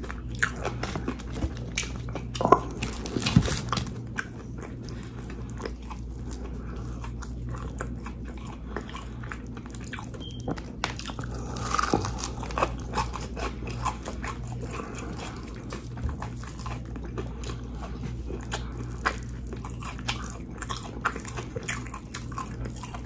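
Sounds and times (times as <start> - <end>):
breading crackling: 0.0 - 8.2
chewing and crunching: 0.0 - 23.0.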